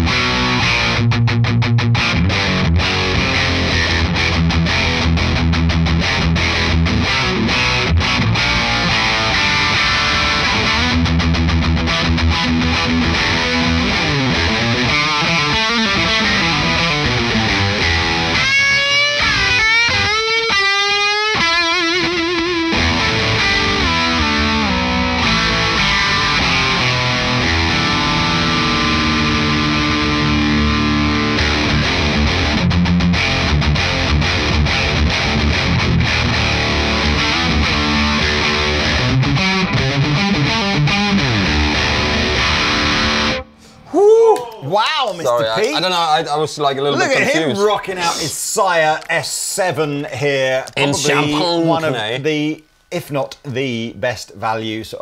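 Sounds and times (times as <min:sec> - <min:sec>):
distorted electric guitar metal riffs: 0:00.0 - 0:43.9.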